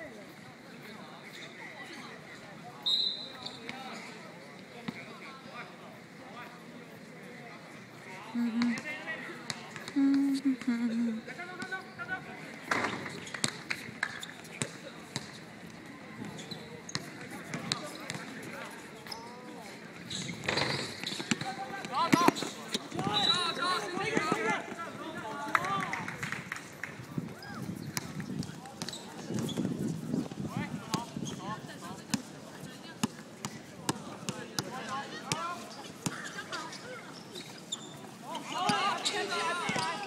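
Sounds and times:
players' voices: 0:00.0 - 0:13.2, 0:13.8 - 0:40.0
indistinct voices: 0:08.3 - 0:09.0, 0:10.0 - 0:11.4.

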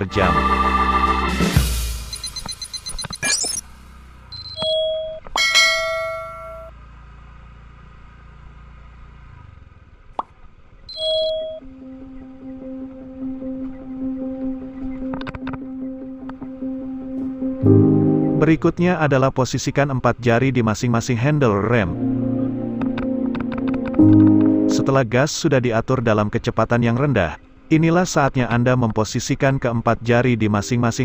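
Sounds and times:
background music: 0:00.0 - 0:02.9, 0:11.6 - 0:18.8, 0:21.0 - 0:25.1, 0:30.1 - 0:31.0
pops: 0:02.2 - 0:03.6
short chime-like dings: 0:05.4 - 0:06.7.

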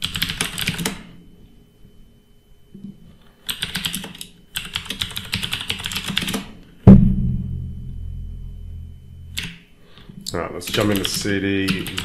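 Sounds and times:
computer keyboard typing: 0:00.0 - 0:01.0, 0:03.5 - 0:06.4, 0:10.7 - 0:12.0
sudden loud thump: 0:06.9 - 0:09.3
low rumble: 0:06.9 - 0:09.4.

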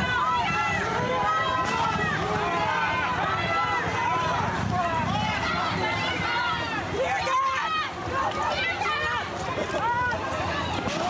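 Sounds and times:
crowd shouting and yelling: 0:00.0 - 0:11.0.

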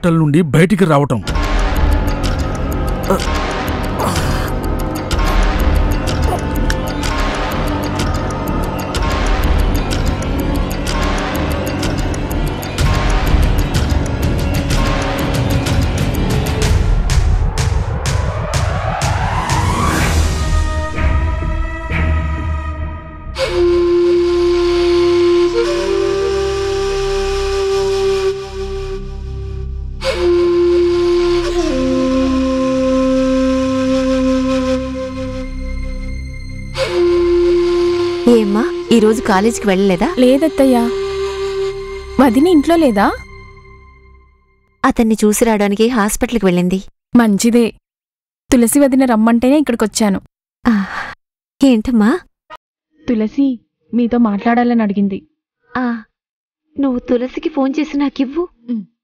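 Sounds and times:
person speaking: 0:03.1 - 0:03.3, 0:04.0 - 0:04.6, 0:06.3 - 0:06.6
woman sighing: 0:03.1 - 0:03.3, 0:04.0 - 0:04.6, 0:06.2 - 0:06.6, 0:50.7 - 0:51.2
slow melody of long notes: 0:21.2 - 0:44.3.

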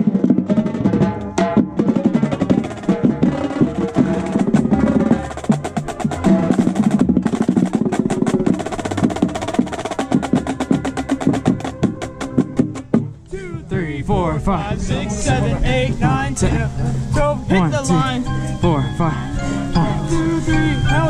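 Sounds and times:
marching drumline playing: 0:00.0 - 0:13.2
brass chords: 0:00.0 - 0:21.0.

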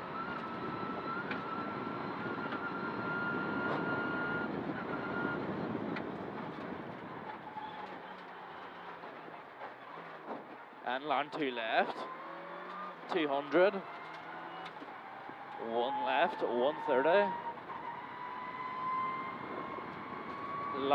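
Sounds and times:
car engine and road rumble: 0:00.0 - 0:20.9.

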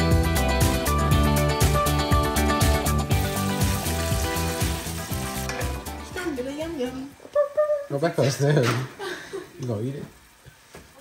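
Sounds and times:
background music: 0:00.0 - 0:07.2
hot oil sizzling: 0:00.0 - 0:11.0.

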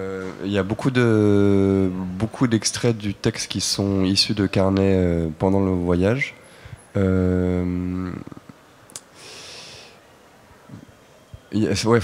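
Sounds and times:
person breathing in: 0:09.2 - 0:10.0.

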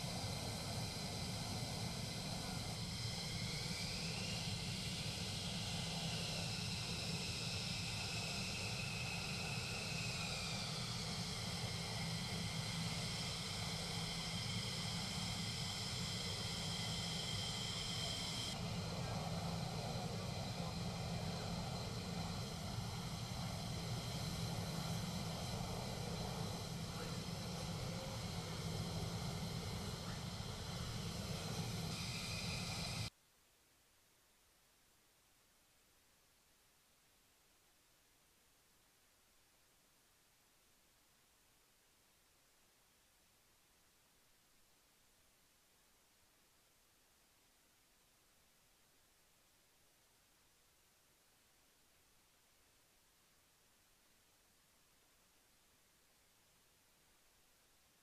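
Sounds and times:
high turbine whine: 0:00.0 - 0:33.1
jet engines running: 0:00.0 - 0:33.1.

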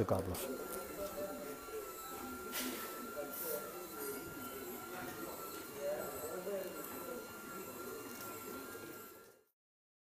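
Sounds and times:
steady high-pitched whine: 0:00.0 - 0:09.5
workshop background noise: 0:00.0 - 0:09.6.

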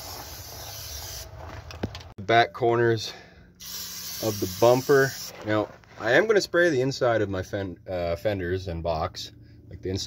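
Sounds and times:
aerosol can spraying: 0:00.0 - 0:01.3, 0:03.6 - 0:05.3.

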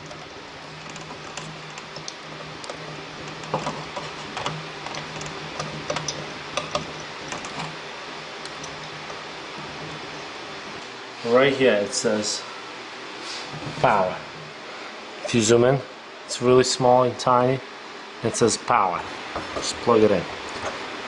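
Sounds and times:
computer parts clicking and tapping: 0:00.0 - 0:07.8, 0:08.4 - 0:10.9
steady low hum: 0:00.0 - 0:21.0.

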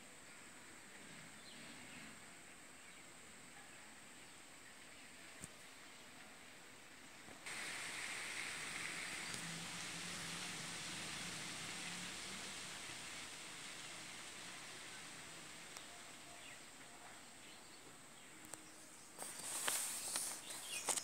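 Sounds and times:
faint steady hiss: 0:00.0 - 0:21.0.

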